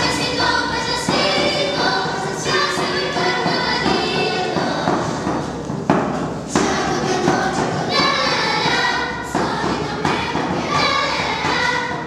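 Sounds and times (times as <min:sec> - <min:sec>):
children and women choir singing: 0:00.0 - 0:12.0
hand drum beat: 0:00.0 - 0:12.0.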